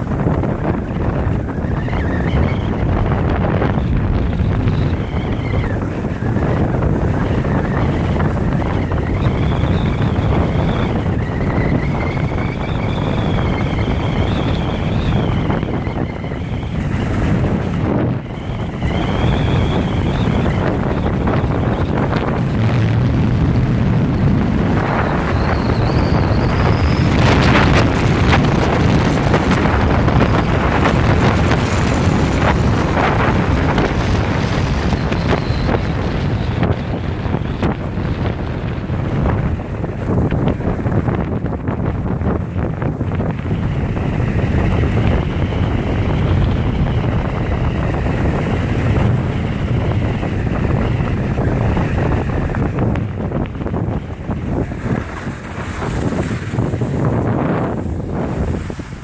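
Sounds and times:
wind buffeting microphone: 0.0 - 59.0
thin wavering whistle: 18.3 - 22.2, 24.8 - 27.8.

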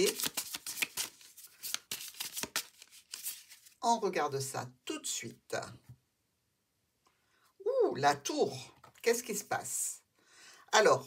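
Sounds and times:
cards being shuffled: 0.0 - 3.8.

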